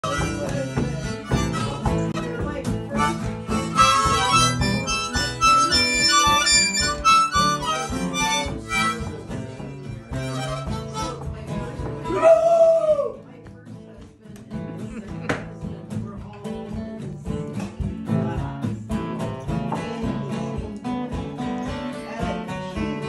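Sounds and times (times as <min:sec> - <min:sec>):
harmonica melody: 0:00.0 - 0:11.8
guitar accompaniment: 0:00.0 - 0:23.0.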